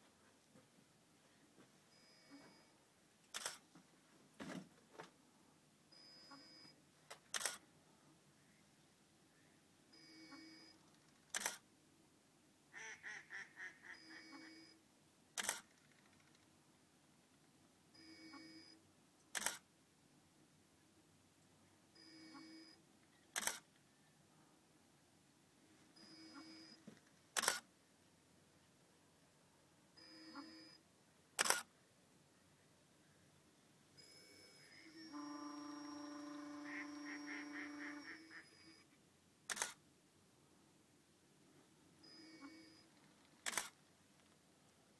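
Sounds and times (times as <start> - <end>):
camera shutter firing: 3.3 - 3.6, 7.2 - 7.6, 11.3 - 11.6, 15.4 - 15.7, 19.3 - 19.6, 23.4 - 23.6, 27.4 - 27.7, 31.4 - 31.7, 39.5 - 39.8, 43.4 - 43.8.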